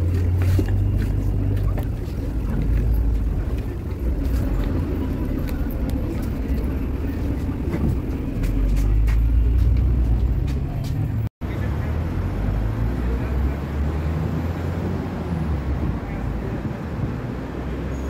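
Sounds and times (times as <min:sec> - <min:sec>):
engine and road rumble: 0:00.0 - 0:18.0.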